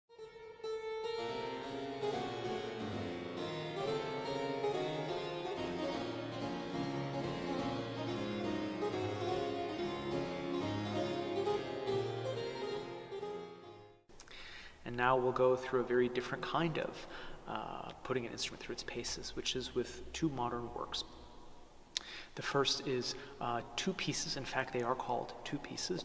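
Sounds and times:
solo harpsichord playing: 0:00.2 - 0:14.0.

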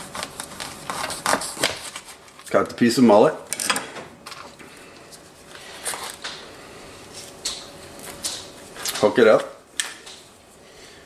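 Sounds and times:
rustles and scrapes of handling: 0:00.0 - 0:02.9, 0:04.3 - 0:09.4.

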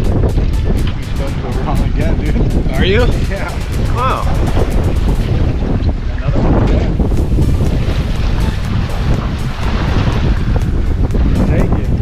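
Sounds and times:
sea washing around hull: 0:00.0 - 0:12.0
wind buffeting microphone: 0:00.0 - 0:12.0.

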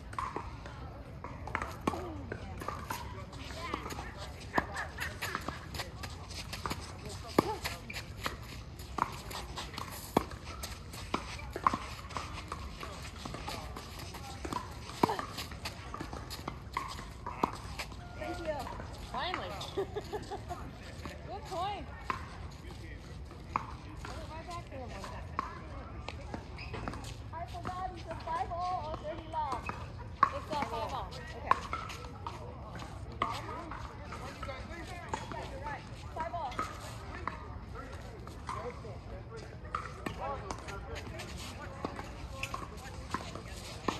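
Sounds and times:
tennis ball bouncing: 0:00.1 - 0:00.6, 0:01.2 - 0:22.4, 0:23.3 - 0:35.6
shoes scuffing on court: 0:01.5 - 0:38.6.

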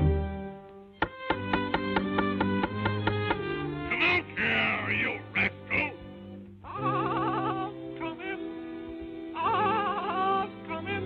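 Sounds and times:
orchestral music: 0:00.0 - 0:11.0
squawky duck-like cartoon voice: 0:03.9 - 0:06.0.

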